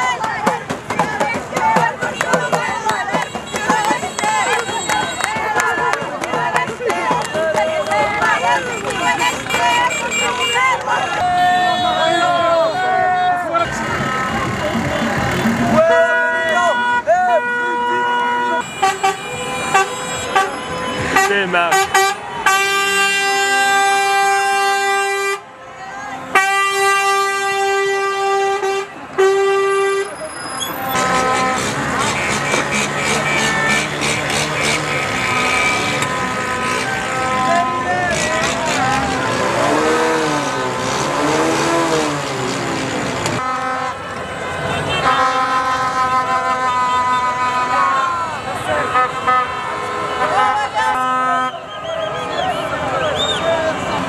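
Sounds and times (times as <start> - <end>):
vehicle horns honking: 0.0 - 42.4, 43.2 - 54.0
crowd shouting and cheering: 0.0 - 54.0.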